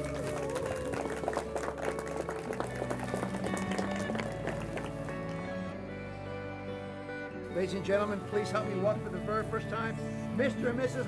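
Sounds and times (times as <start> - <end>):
people applauding: 0.0 - 5.8
background music sustained notes: 0.0 - 11.0.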